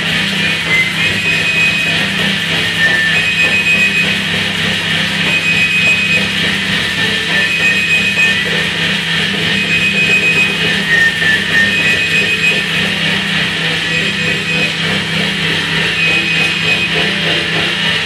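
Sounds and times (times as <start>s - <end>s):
low drone: 0.0s - 18.0s
electronic noise wash: 0.1s - 18.0s
pitch glide: 0.5s - 18.0s
thin high tone: 5.2s - 18.0s.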